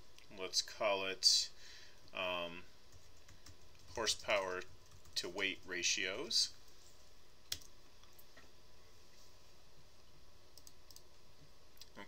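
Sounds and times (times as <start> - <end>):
low room hiss: 0.0 - 12.0
computer mouse clicks: 10.6 - 11.1.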